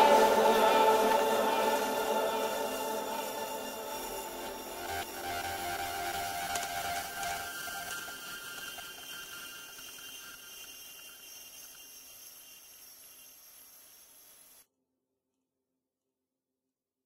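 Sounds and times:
chillwave held tones: 0.0 - 13.0
hiss: 0.0 - 14.6.

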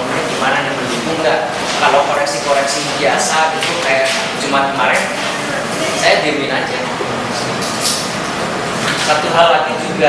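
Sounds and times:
room hiss and rumble: 0.0 - 10.0.

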